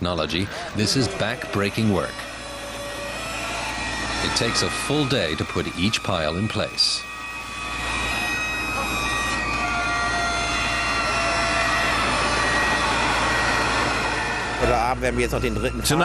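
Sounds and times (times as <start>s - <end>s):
heavy crane machinery rumble: 0.0s - 16.0s
metallic squeals of steel: 0.3s - 16.0s.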